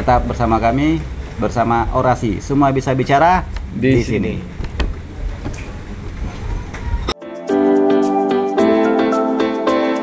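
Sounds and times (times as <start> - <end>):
low rumbling background noise: 0.0 - 7.2.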